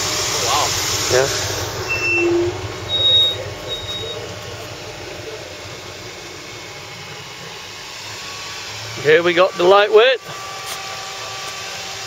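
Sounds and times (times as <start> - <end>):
distant vehicle engine hum: 0.0 - 12.0
short electronic beeps: 1.9 - 4.3.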